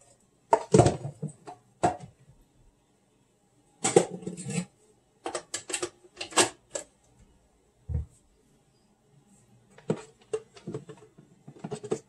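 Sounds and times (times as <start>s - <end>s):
metal and plastic parts clattering: 3.8s - 6.9s, 9.8s - 12.0s.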